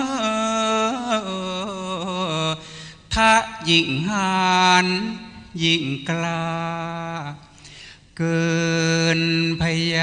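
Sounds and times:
man singing with ornaments: 0.0 - 7.5, 8.2 - 10.0.

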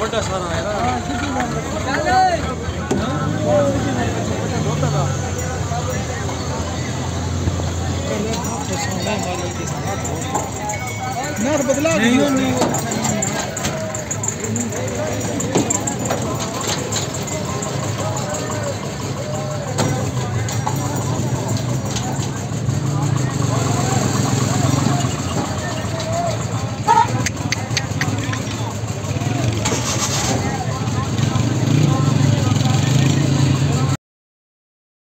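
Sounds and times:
vehicle engine idling: 0.0 - 33.9
people's voices: 0.0 - 34.0.

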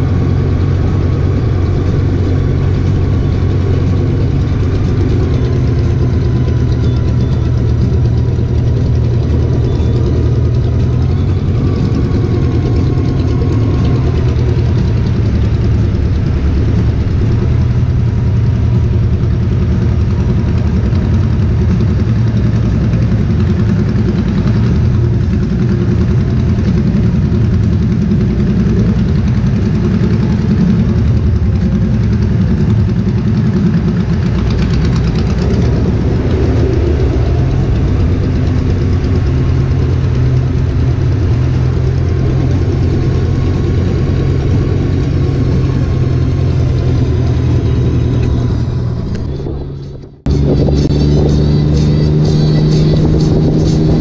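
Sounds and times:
motorcycle engine running at low speed: 0.0 - 54.0.

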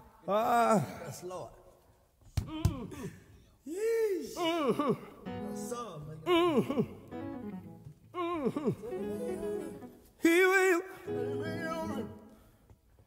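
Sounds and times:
sustained backing notes: 5.2 - 12.5.

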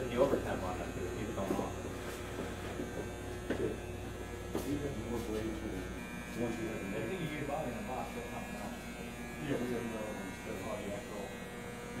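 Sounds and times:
electrical buzz and hum: 0.0 - 12.0.

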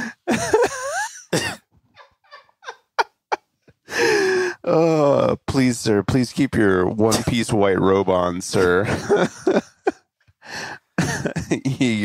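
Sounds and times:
coughing: 0.0 - 2.5, 11.0 - 12.0
men laughing hard: 0.0 - 4.6, 8.6 - 10.1, 11.0 - 12.0
gasping breaths: 3.9 - 4.7, 10.4 - 11.0.

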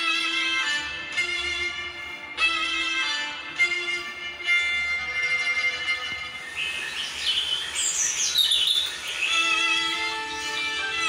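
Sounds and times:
violin music: 0.0 - 11.0.

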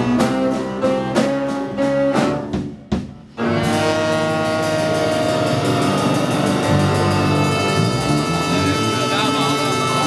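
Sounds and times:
blues band sustained chord: 3.4 - 10.0.

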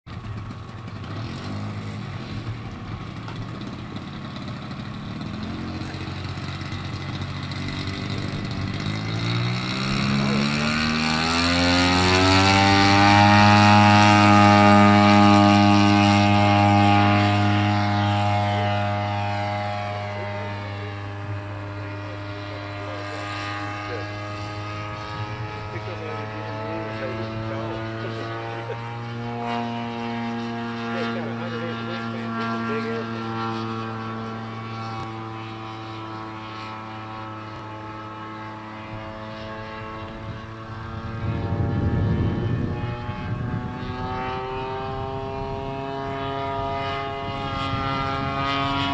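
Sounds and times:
model plane engine and propeller: 0.1 - 48.9.

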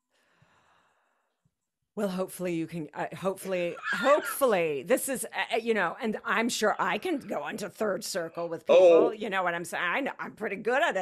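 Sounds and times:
person sighing: 8.7 - 9.2.

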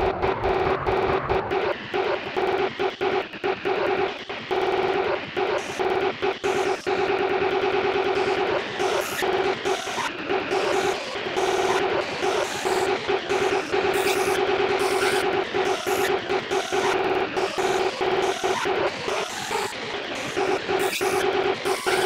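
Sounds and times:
harsh distorted bursts: 0.0 - 22.0.

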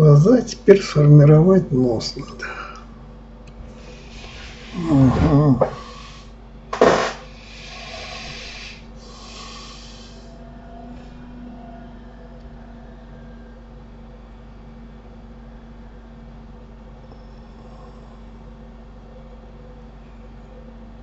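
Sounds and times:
low electrical hum: 0.0 - 21.0
person breathing: 2.4 - 3.0, 3.7 - 6.3, 7.2 - 10.4.

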